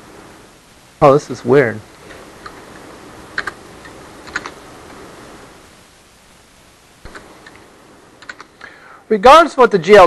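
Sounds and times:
low room noise: 0.0 - 10.0
computer keyboard keystrokes: 3.4 - 3.6, 4.2 - 4.6, 8.2 - 8.6.

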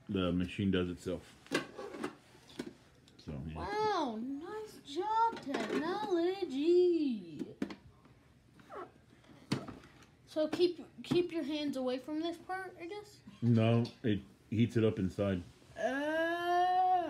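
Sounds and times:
child making sing-song sounds: 15.8 - 17.0.

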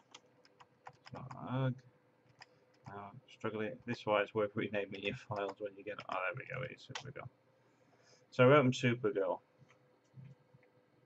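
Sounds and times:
computer mouse clicks: 2.3 - 2.9.

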